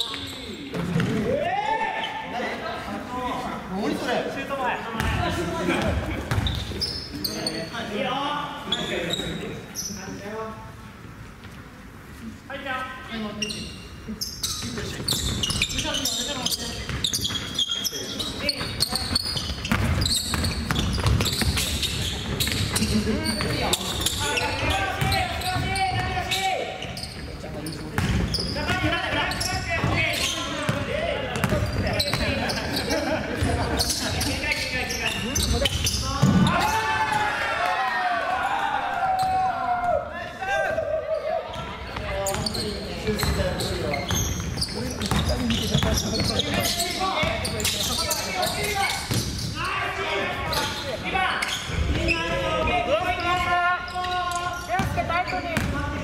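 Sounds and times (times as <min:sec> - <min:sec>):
basketball bouncing on wooden floor: 0:19.4 - 0:22.8, 0:30.6 - 0:32.3, 0:44.1 - 0:47.4
players calling out: 0:28.0 - 0:56.0.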